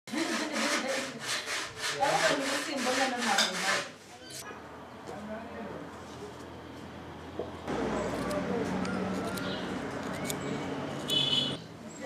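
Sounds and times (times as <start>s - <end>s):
rhythmic hand scraping: 0.1s - 3.9s.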